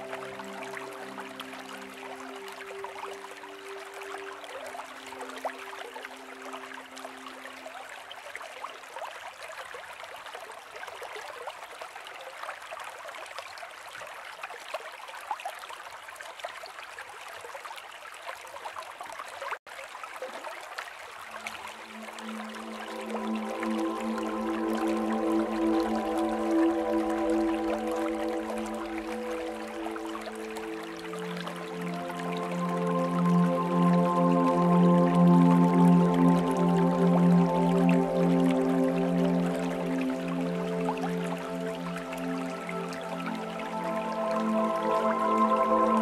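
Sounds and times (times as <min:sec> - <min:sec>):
sustained music notes: 0:00.0 - 0:07.7, 0:21.4 - 0:46.0
stream trickling: 0:00.0 - 0:46.0.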